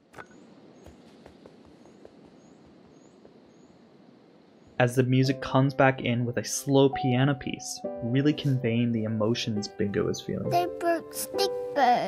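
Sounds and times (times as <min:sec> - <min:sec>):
soft steady hiss: 0:00.0 - 0:12.0.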